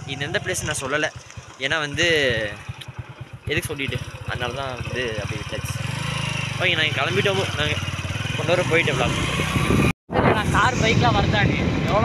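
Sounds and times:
man talking: 0.0s - 2.6s, 3.5s - 5.8s, 6.6s - 7.8s, 10.2s - 12.0s.

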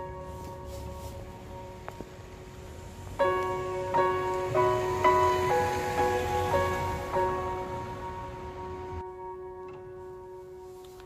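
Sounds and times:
slow melody of ringing notes: 0.0s - 11.0s.

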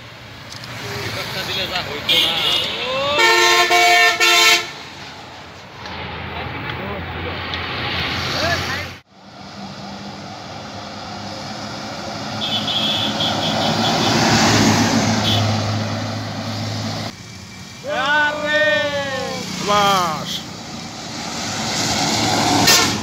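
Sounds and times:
coach passing on highway: 0.0s - 23.0s
loud excited shouts: 2.2s - 3.2s, 17.8s - 20.4s.

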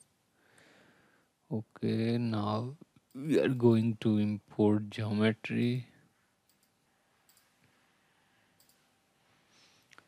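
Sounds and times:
computer mouse clicks: 6.4s - 7.6s, 8.6s - 8.9s.

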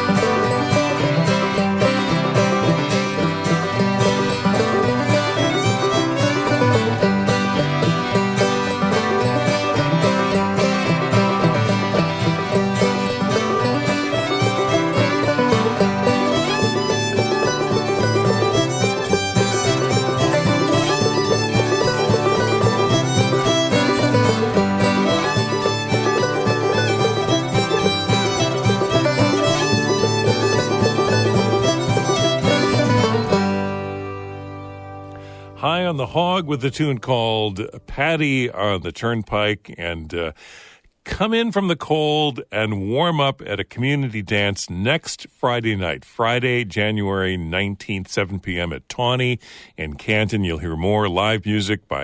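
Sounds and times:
fiddle: 0.0s - 38.8s
string band playing dance tune: 0.0s - 52.0s.

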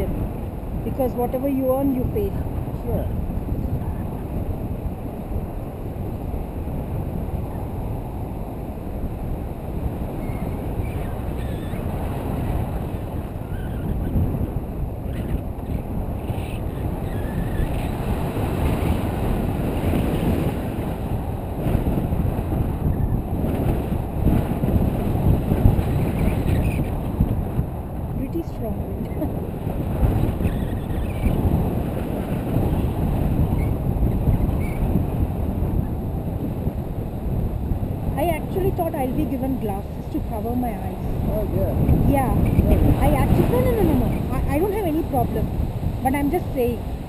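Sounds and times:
wind buffeting microphone: 0.0s - 47.0s.

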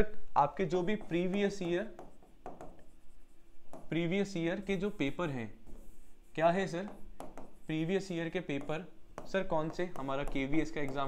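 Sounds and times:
stylus rubbing on screen: 0.7s - 11.0s
stylus tap: 0.9s - 2.9s, 3.7s - 4.0s, 6.8s - 7.6s, 8.5s - 11.0s.

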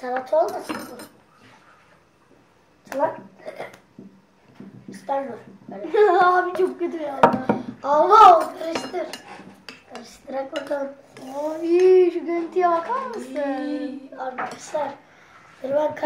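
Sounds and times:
kitchenware clattering: 0.1s - 1.2s, 6.6s - 13.3s
children's voices: 5.0s - 9.2s, 9.9s - 15.0s, 15.6s - 16.0s
metal spoon clinking on bowl: 8.6s - 9.8s.

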